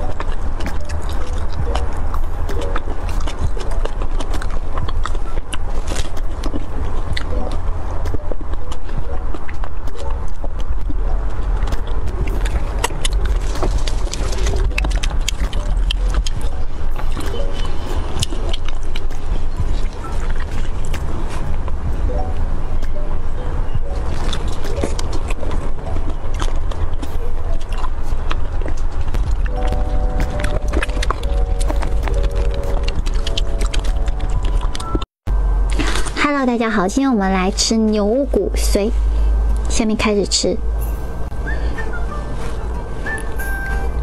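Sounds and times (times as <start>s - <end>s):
wet mouth clicks and smacks: 0.0s - 22.0s, 22.8s - 35.0s
low rumble: 0.0s - 44.0s
steady low hum: 0.0s - 44.0s
steady tones: 27.9s - 44.0s.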